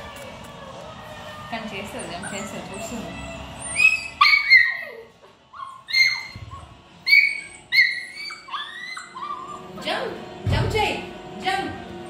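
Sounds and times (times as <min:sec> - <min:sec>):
puppy whining: 0:00.0 - 0:10.2.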